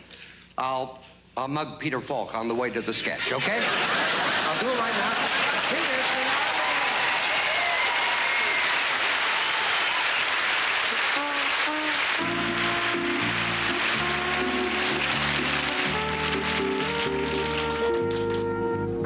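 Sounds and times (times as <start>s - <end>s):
audience laughing: 2.9s - 7.5s
audience applauding: 3.6s - 18.7s
band music with held chords: 10.9s - 19.0s.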